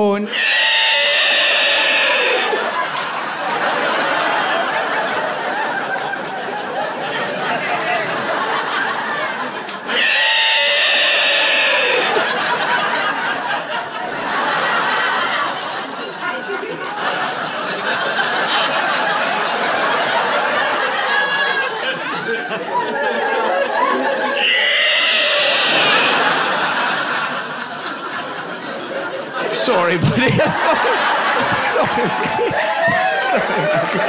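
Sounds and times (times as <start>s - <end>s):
man's screeching roar: 0.3s - 2.6s, 9.9s - 12.3s, 24.4s - 26.5s.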